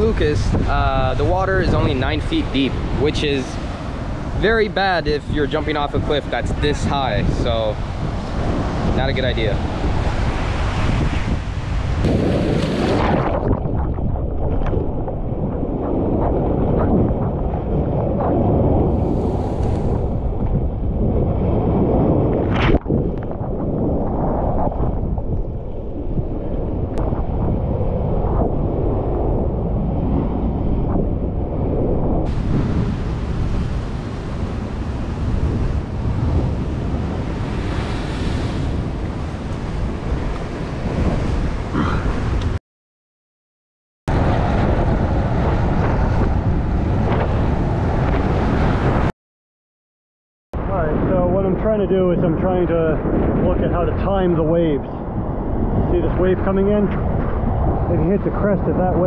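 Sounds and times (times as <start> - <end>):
wind on microphone: 0.0 - 42.6, 44.1 - 49.1, 50.6 - 59.0
surf breaking against rocks: 12.0 - 13.6.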